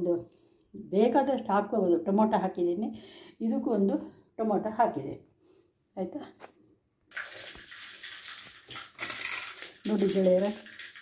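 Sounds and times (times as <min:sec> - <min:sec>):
water pouring into steel bowl: 0:07.1 - 0:11.0.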